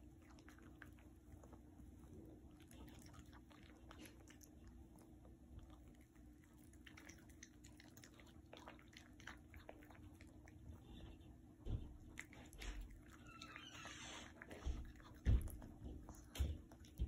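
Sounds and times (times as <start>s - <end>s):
dog chewing and smacking: 0.0s - 17.0s.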